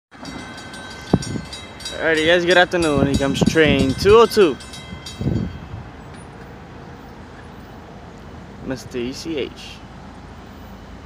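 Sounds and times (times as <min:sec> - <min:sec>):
outdoor noise: 0:00.1 - 0:11.0.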